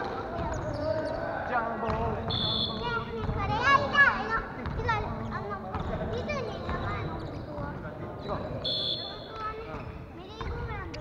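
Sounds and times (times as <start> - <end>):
players chatting: 0.0 - 11.0.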